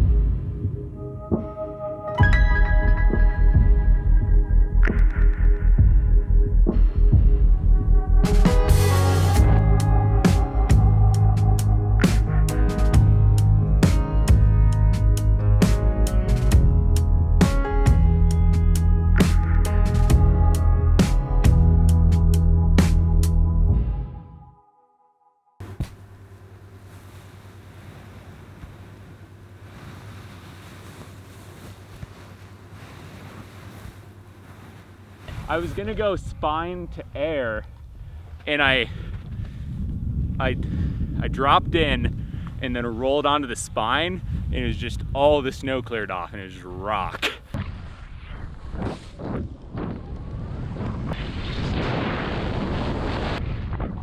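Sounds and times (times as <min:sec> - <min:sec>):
background music: 0:00.0 - 0:25.4
skis sliding on snow: 0:26.8 - 0:36.1
wind buffeting microphone: 0:35.4 - 0:46.6.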